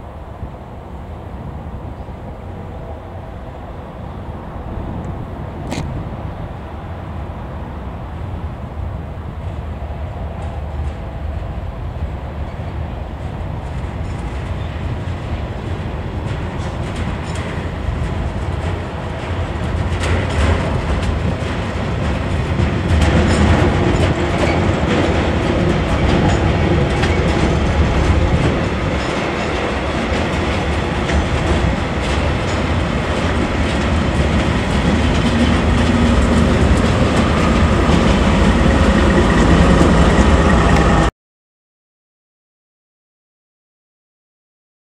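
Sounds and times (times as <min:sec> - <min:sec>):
diesel locomotive rumble: 0:00.0 - 0:41.1
train wagons clattering over rail joints: 0:10.4 - 0:41.0.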